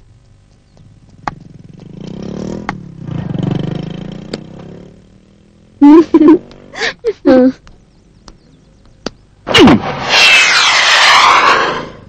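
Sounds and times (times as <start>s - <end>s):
vehicle engine revving: 0.8s - 6.8s.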